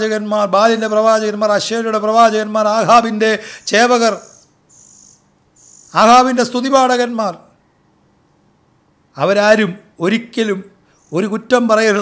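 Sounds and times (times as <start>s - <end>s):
man preaching: 0.0s - 4.3s, 5.9s - 7.5s, 9.2s - 12.0s
high thin insect trill: 3.6s - 6.2s.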